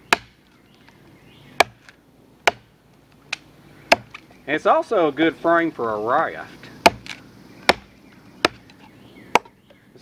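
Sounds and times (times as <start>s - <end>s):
machete chopping wood: 0.0s - 0.5s, 1.6s - 4.3s, 6.8s - 9.6s.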